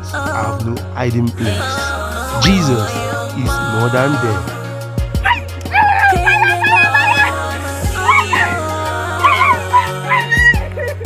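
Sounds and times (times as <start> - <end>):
background music with low chords: 0.0 - 11.0
woman crying and yelping: 5.3 - 11.0.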